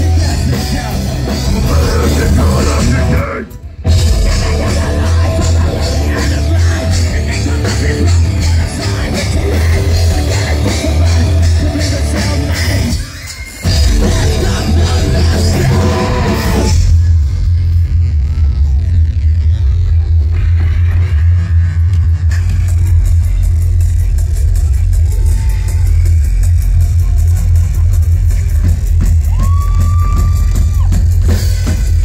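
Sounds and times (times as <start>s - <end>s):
live band playing rock music: 0.0s - 32.0s.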